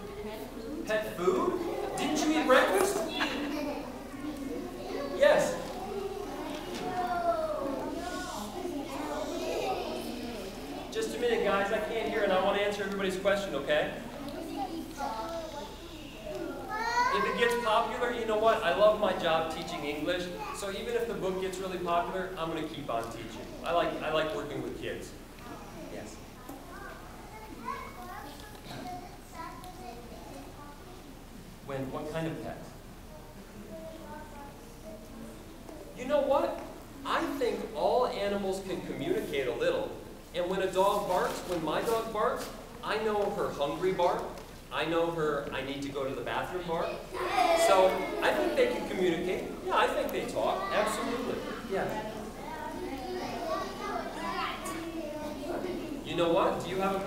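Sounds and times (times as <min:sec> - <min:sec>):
crowd murmur and rustle: 0:00.0 - 0:38.0, 0:38.6 - 0:45.6, 0:46.5 - 0:57.0
children chattering: 0:00.0 - 0:57.0.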